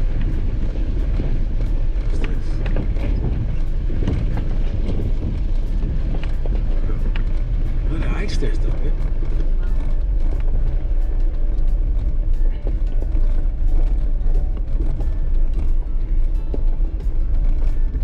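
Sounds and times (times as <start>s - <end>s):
engine and tyres rumbling: 0.0s - 18.0s
rattles and knocks: 0.0s - 18.0s.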